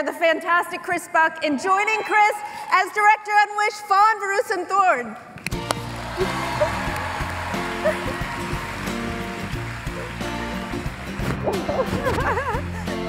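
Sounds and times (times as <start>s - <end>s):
crowd applauding and cheering: 5.4s - 13.0s
music with steady beat: 5.6s - 13.0s.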